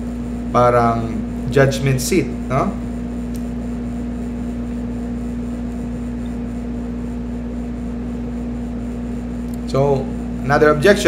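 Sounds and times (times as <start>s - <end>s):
constant low room hum: 0.0s - 11.0s.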